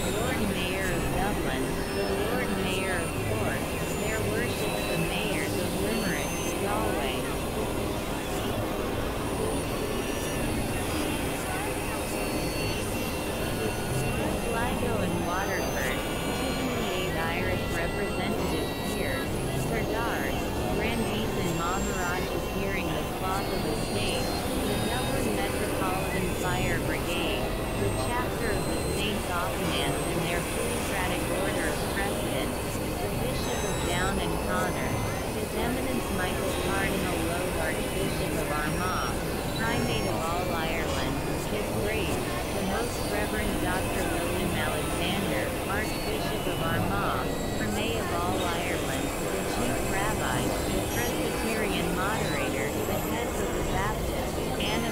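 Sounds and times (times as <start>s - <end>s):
electronic chirping pitch glides: 0.0s - 54.9s
rushing electronic drone: 0.0s - 54.9s.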